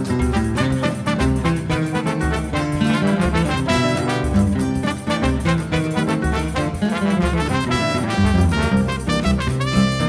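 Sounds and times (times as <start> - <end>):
band backing track: 0.0 - 10.0
classical guitar melody: 0.0 - 10.0
horns holding notes: 0.4 - 10.0.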